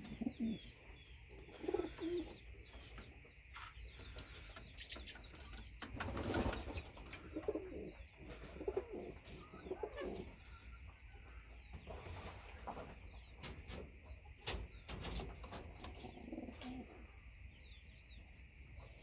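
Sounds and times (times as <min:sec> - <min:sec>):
pigeons cooing: 0:00.0 - 0:03.1, 0:03.9 - 0:10.7, 0:15.0 - 0:17.1.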